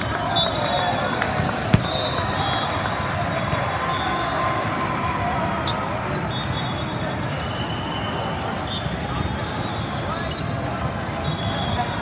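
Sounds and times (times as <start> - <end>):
voices chattering in a hall: 0.0 - 12.0
volleyballs hit and bouncing: 1.2 - 3.8.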